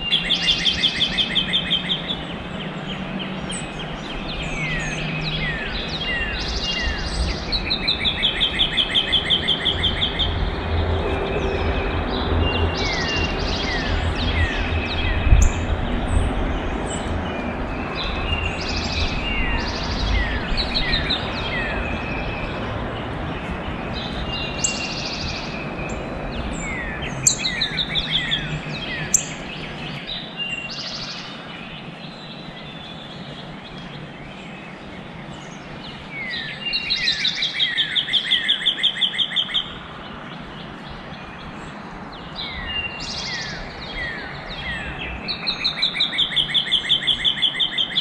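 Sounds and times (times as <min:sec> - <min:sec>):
bird trill: 0:00.0 - 0:10.5, 0:11.3 - 0:16.2, 0:23.9 - 0:39.8, 0:42.4 - 0:48.0
songbirds singing: 0:00.0 - 0:48.0.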